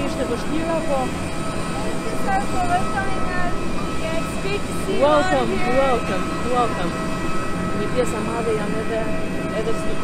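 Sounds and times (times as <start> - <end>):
jet aircraft engine whine: 0.0 - 10.0
people talking: 1.7 - 7.0.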